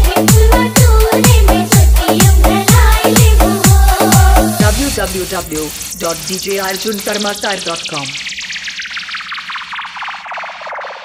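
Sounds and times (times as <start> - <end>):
pulsing buzz sweeping downward: 3.5 - 11.0.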